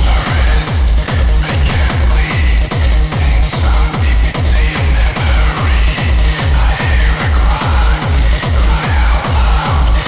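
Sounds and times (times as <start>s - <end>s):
heavy kick drum beat: 0.0s - 10.0s.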